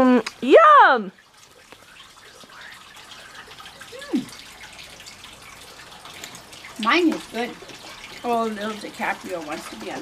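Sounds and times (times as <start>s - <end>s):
faint rush of running water: 0.0s - 10.0s.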